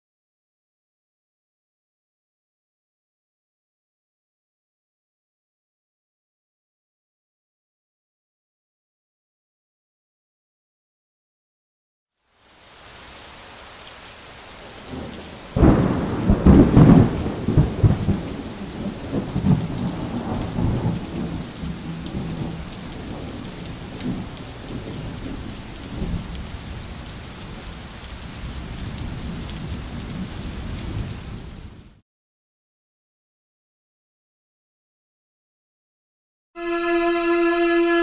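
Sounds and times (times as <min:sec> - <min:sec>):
steady rain: 0:12.2 - 0:32.0
rolling thunderclap: 0:14.9 - 0:26.5.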